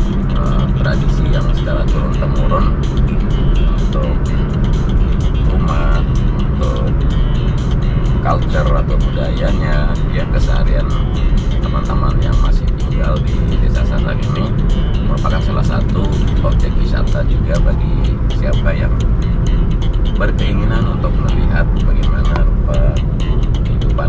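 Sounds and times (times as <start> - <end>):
car driving rumble: 0.0 - 24.0
music: 0.0 - 24.0.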